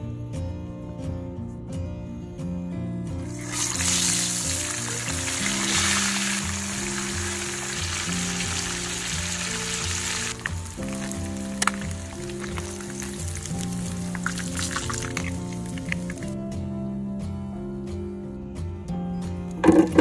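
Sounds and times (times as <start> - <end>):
background music with beat: 0.0 - 20.0
fish sizzling in hot oil: 3.2 - 16.4
oil pops and crackles: 3.3 - 16.4.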